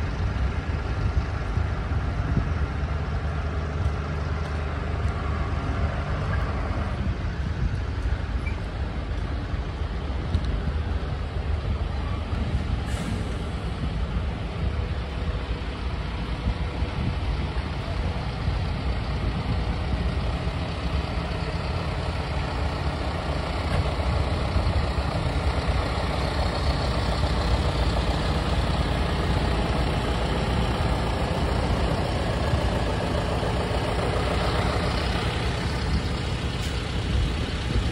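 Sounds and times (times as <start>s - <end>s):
tractor diesel engines idling: 0.0s - 37.9s.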